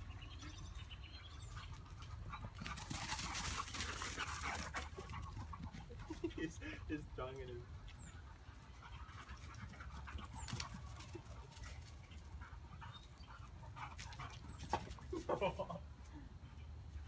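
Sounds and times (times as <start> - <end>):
bird chirping: 0.0 - 2.7, 6.9 - 9.1, 12.0 - 14.8.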